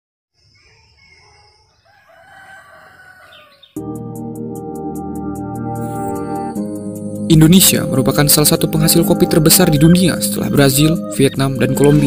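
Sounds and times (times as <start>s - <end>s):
rooster crowing: 0.4s - 3.8s.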